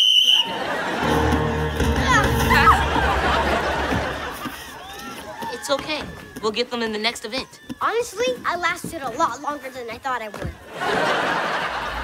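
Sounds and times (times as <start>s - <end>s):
sports whistle blowing: 0.0s - 0.7s.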